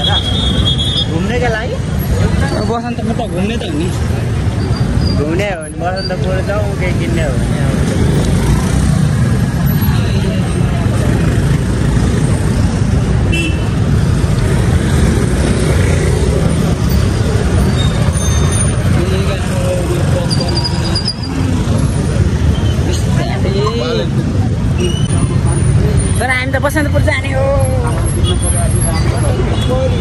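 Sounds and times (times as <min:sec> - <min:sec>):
motorcycles and cars rumbling: 0:00.0 - 0:30.0
people talking: 0:18.9 - 0:21.2, 0:22.9 - 0:30.0.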